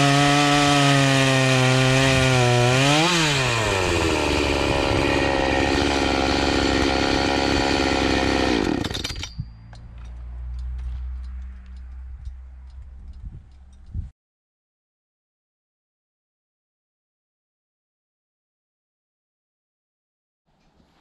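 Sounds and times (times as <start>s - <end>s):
chainsaw cutting log: 0.0s - 9.4s.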